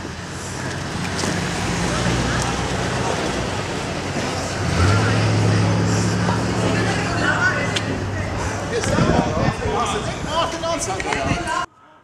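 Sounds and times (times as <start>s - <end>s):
vehicle engine humming: 0.0s - 11.2s.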